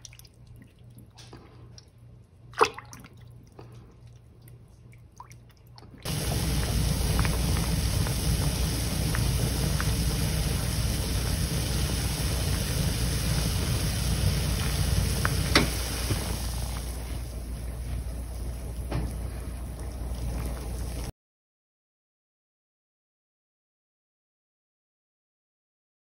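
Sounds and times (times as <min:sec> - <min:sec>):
water boiling hard: 0:06.0 - 0:21.1.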